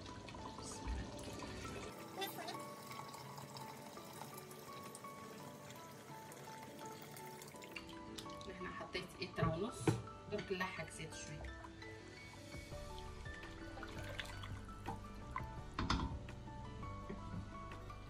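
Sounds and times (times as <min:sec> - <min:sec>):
sauce simmering: 0:00.0 - 0:08.4, 0:11.5 - 0:15.7
water pouring into a pot: 0:00.0 - 0:08.9, 0:11.4 - 0:15.7
background music: 0:00.0 - 0:18.0.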